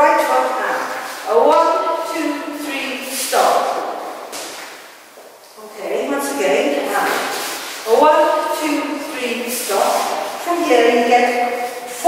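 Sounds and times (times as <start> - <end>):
woman speaking: 0.0 - 3.9, 5.5 - 12.0.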